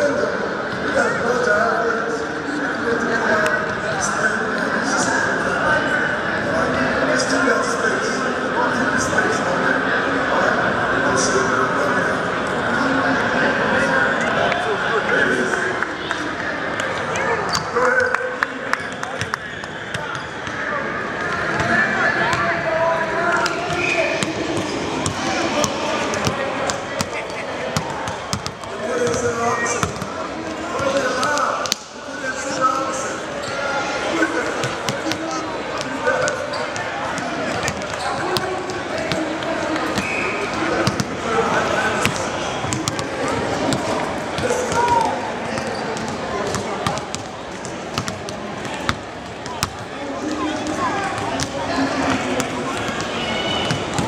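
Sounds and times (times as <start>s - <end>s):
background voices in a hall: 0.0s - 54.0s
basketballs bouncing on wooden court: 23.4s - 31.8s, 35.8s - 41.2s, 42.0s - 54.0s
basketballs bouncing on hardwood: 27.8s - 30.1s, 45.6s - 49.9s.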